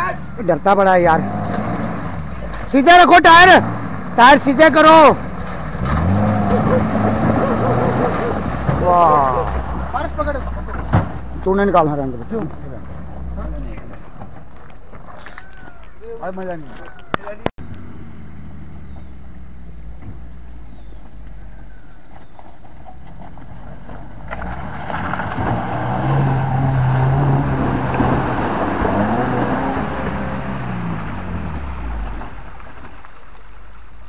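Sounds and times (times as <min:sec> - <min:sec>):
car engine driving: 0:00.0 - 0:34.0
car splashing through water: 0:03.4 - 0:10.6, 0:23.5 - 0:33.8.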